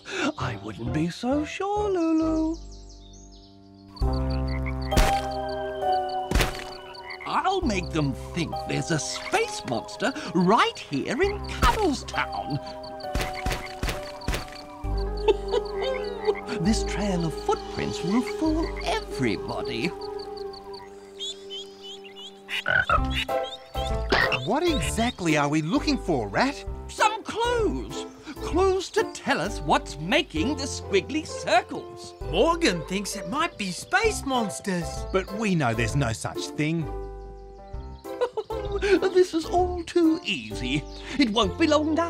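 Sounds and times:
cartoon background music: 0.0s - 42.0s
sharp thump in sand: 6.3s - 6.8s.

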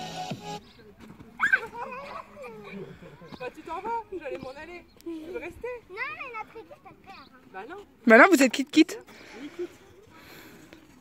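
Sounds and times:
child squealing: 1.4s - 2.2s.

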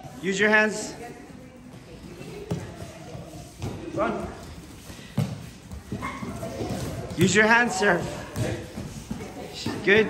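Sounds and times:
barefoot children moving on mats: 0.0s - 10.0s
faint voices: 0.9s - 10.0s.

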